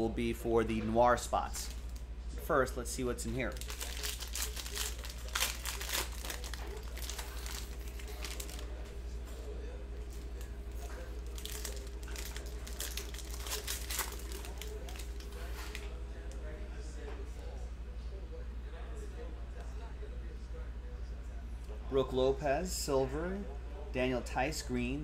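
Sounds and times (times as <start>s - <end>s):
plastic wrapper tearing and crinkling: 3.4s - 8.8s, 11.2s - 15.8s.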